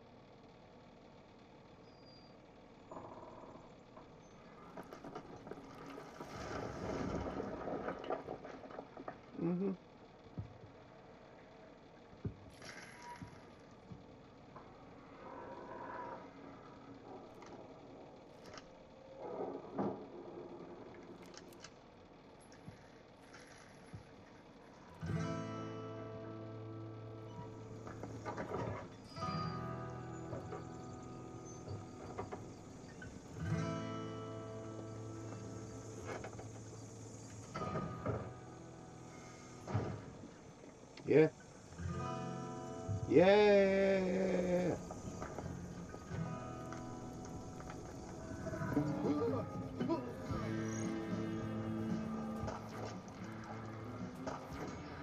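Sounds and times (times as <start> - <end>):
film sound effects: 24.6 - 55.0.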